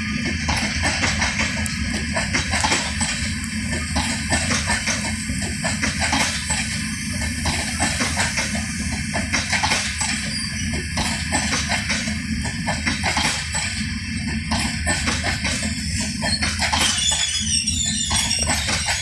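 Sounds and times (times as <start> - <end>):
constant train rumble: 0.0 - 19.0
train wheels clacking over rail joints: 0.0 - 19.0.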